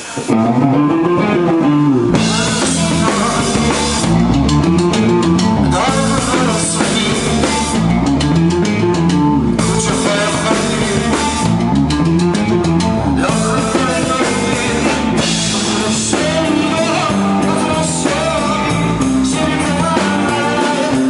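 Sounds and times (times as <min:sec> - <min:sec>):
rock band playing: 0:00.0 - 0:21.0.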